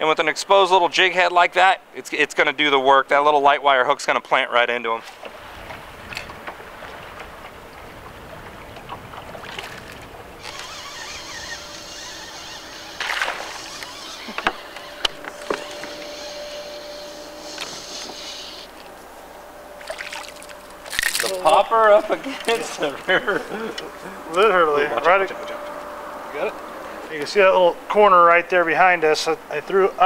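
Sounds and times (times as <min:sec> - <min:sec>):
faint high whine: 0:00.0 - 0:30.0
water lapping against boat hull: 0:05.0 - 0:21.4.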